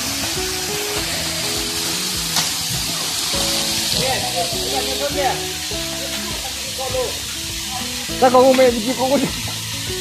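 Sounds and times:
music of held notes: 0.0s - 10.0s
water cascading down rock: 0.0s - 10.0s.

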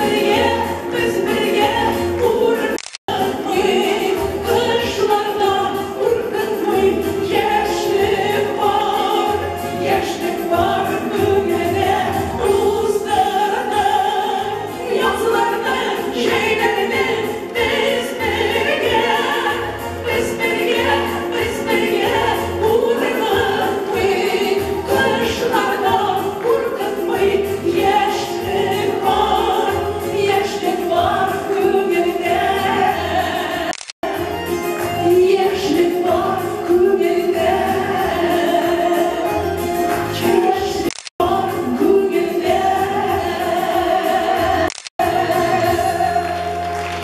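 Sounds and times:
musical accompaniment: 0.0s - 47.0s
women singing together: 0.0s - 47.0s.

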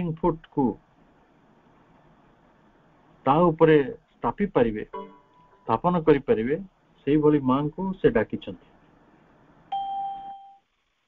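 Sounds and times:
short ding: 4.9s - 5.6s.

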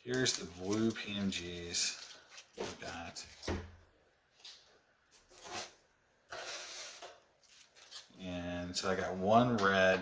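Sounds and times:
trading cards rustling and scraping: 0.1s - 3.5s, 4.4s - 8.2s
soft card shuffling: 0.1s - 3.6s, 4.3s - 8.2s.

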